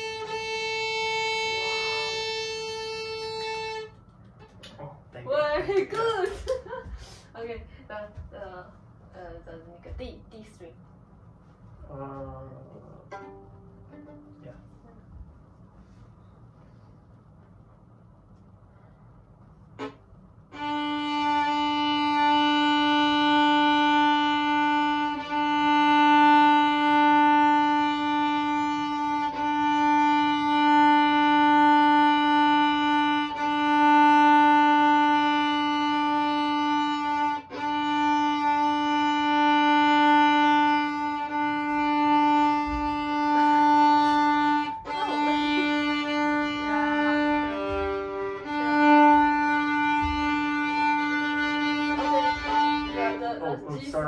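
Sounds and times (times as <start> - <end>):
violin sustained bowed note: 0.0 - 4.6, 11.6 - 16.9, 19.7 - 54.0.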